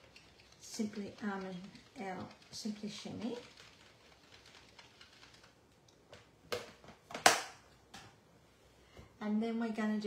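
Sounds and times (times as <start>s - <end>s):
craft supplies clicking and knocking: 0.0s - 8.2s.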